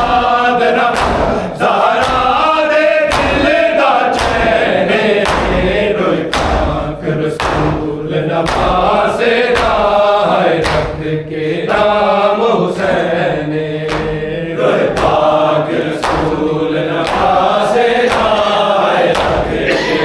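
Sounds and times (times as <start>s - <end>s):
men chanting a lament: 0.0s - 20.0s
hands beating on bare chests: 0.9s - 1.4s, 3.1s - 3.5s, 5.2s - 8.9s.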